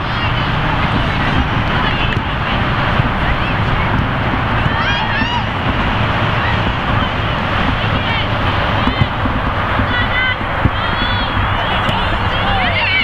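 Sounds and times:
distant voices: 0.0 - 13.0
wind on microphone: 0.0 - 13.0.

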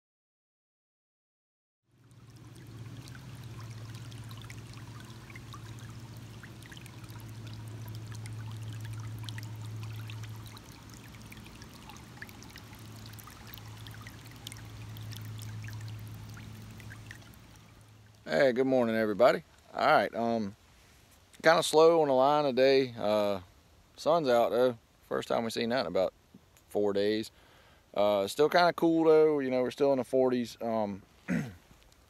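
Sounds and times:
steady low hum: 1.9 - 18.4
stream trickling over stones: 1.9 - 32.0.

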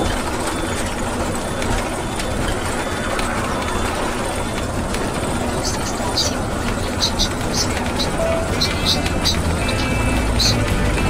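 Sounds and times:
engine and road noise: 0.0 - 11.0.

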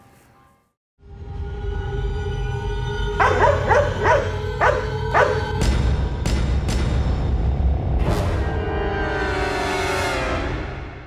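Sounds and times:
background music with drone: 1.0 - 11.0
dog barking: 3.2 - 5.6.

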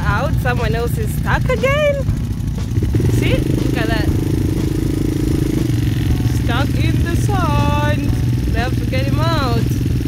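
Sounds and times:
quad bike engine running: 0.0 - 10.0.

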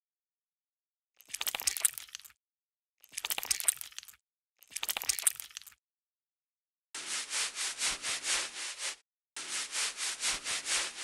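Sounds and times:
brush scrubbing lathered hair: 7.0 - 11.0.

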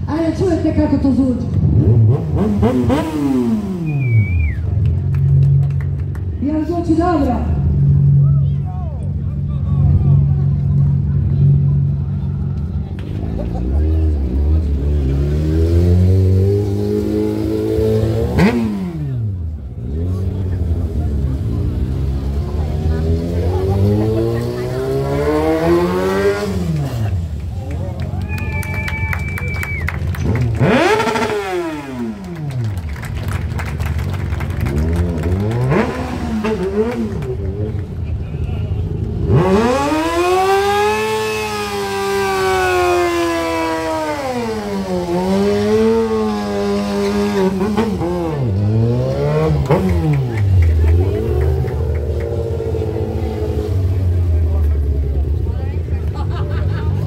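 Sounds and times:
motorcycle engine revving hard: 1.6 - 4.1, 13.6 - 27.3, 30.2 - 32.8, 34.6 - 37.9, 39.0 - 55.4.

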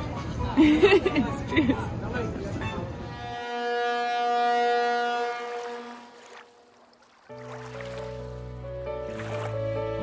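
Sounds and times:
horn-like tone: 3.0 - 6.2.

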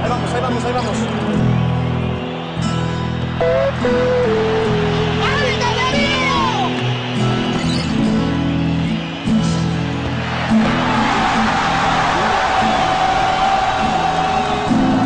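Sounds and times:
background music with guitar: 0.0 - 15.0
stadium crowd cheering: 0.0 - 15.0.

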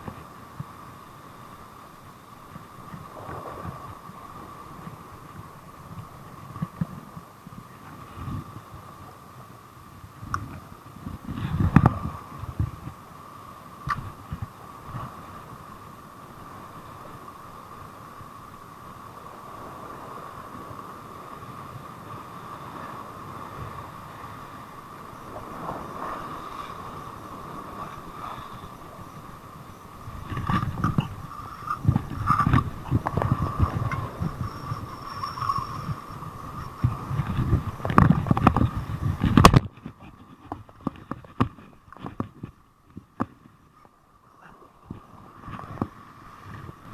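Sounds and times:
faint steady hum: 0.0 - 46.9
surf on rocky shore: 0.0 - 46.9
wind buffeting microphone: 2.4 - 13.1, 13.8 - 43.8, 44.4 - 46.9.

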